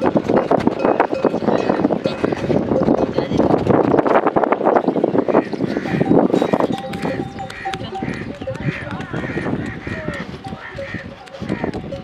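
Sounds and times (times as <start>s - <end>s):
metal bells clanking: 0.0s - 5.1s, 5.8s - 9.1s, 10.5s - 12.0s
footfalls on dry ground: 6.7s - 12.0s.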